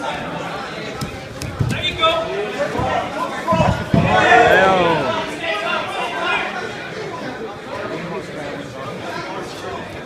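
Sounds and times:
loud shouting voices: 0:02.0 - 0:06.7.

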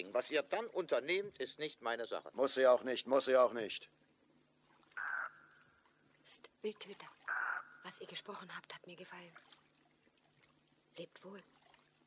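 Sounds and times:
harsh bird-like call: 0:05.0 - 0:05.8, 0:07.3 - 0:08.0.

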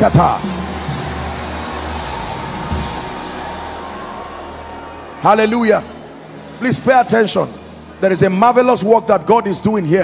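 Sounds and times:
soft church music: 0:00.0 - 0:10.0.

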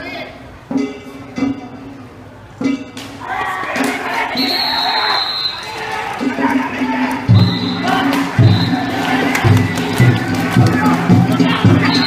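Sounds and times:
crowd shouting: 0:03.2 - 0:12.0
taiko drum strikes: 0:07.3 - 0:12.0.

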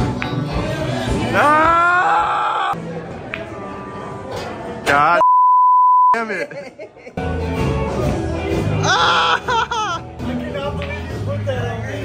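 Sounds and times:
censor bleep: 0:05.2 - 0:06.2.

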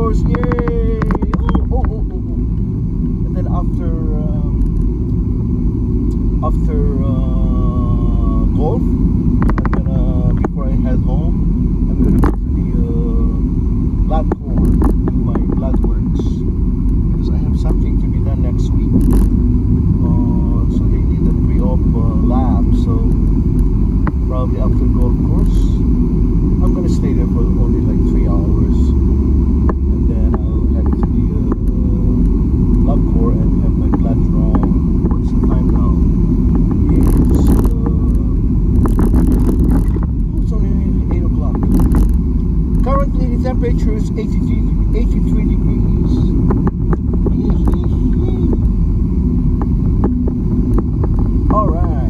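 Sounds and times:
car road and engine rumble: 0:00.0 - 0:52.0.

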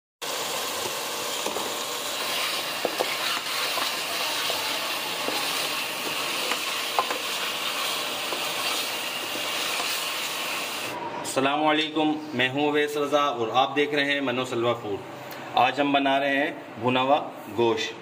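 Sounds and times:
meat sizzling in oil: 0:00.2 - 0:11.0
spatula scraping a metal pot: 0:02.2 - 0:04.2.

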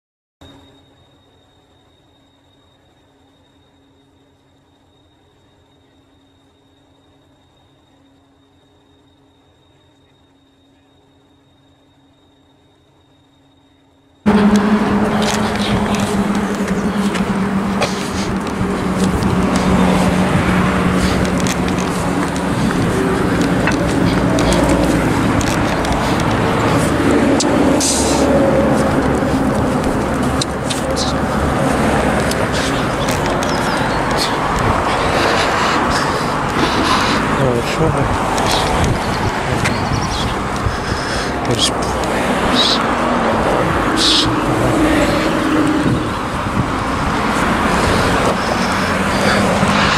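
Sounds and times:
low engine drone: 0:00.4 - 0:49.9
road traffic passing: 0:14.2 - 0:49.9.

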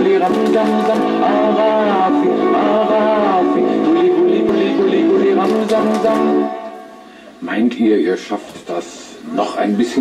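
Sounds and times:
dance music with sung melody: 0:00.0 - 0:06.7
hand claps: 0:00.2 - 0:01.2, 0:05.4 - 0:06.4.

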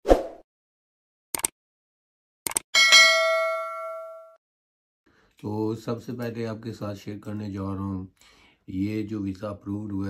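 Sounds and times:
notification bell ding: 0:02.8 - 0:04.4.

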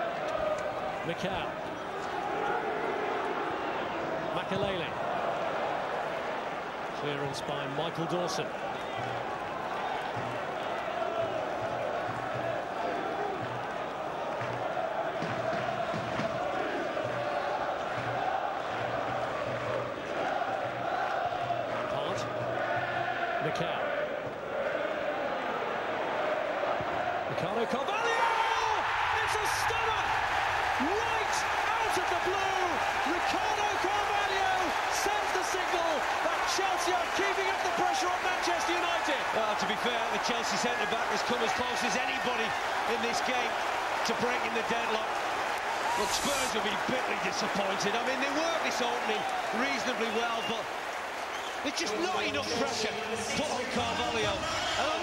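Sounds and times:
stadium crowd singing: 0:00.0 - 0:01.0, 0:10.3 - 0:27.3
crowd roaring and cheering: 0:00.0 - 0:55.0.

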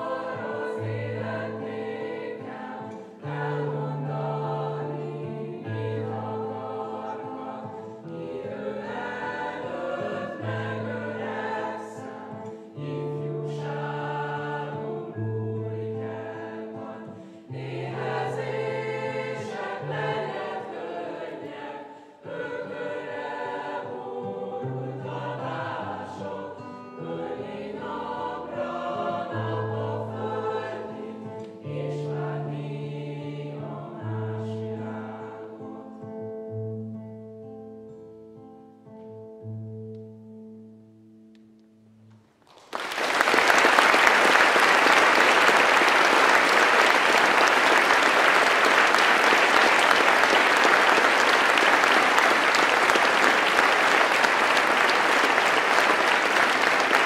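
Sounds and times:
choir of young voices singing: 0:00.0 - 0:36.2, 0:43.9 - 0:57.0
acoustic guitar: 0:00.0 - 0:42.7.

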